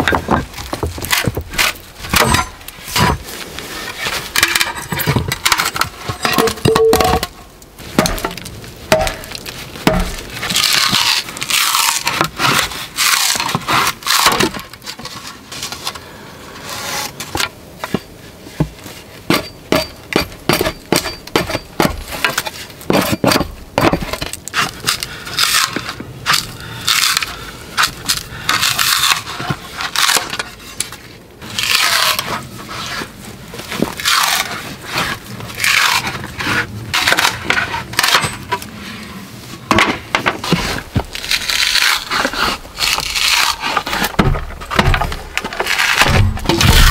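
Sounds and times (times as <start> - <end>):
wood cracking and tearing: 0.0 - 18.0, 20.2 - 39.0, 39.7 - 46.9.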